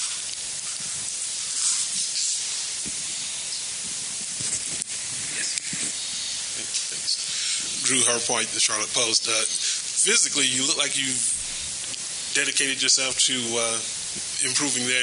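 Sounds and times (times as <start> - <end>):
high background hiss: 0.0 - 15.0.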